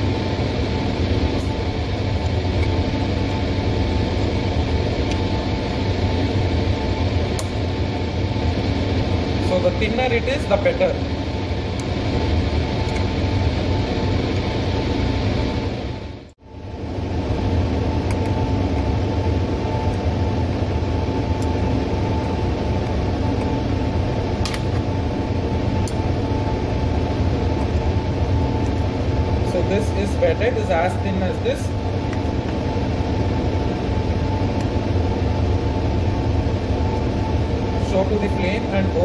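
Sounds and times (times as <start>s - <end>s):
blower rushing air and humming: 0.0s - 39.0s.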